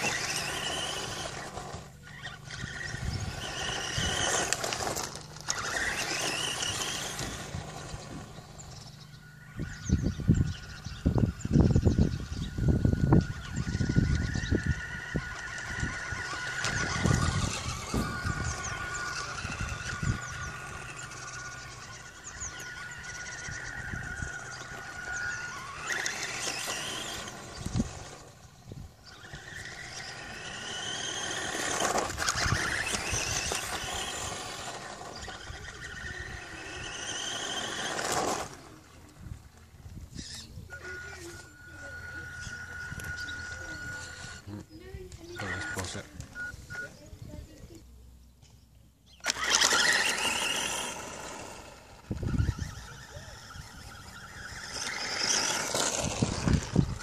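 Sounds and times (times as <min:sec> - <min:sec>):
electric motor whining: 0:00.0 - 0:47.8, 0:49.0 - 0:57.0.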